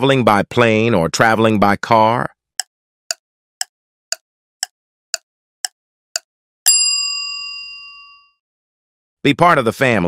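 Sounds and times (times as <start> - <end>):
bell-like ding: 6.7 - 8.4.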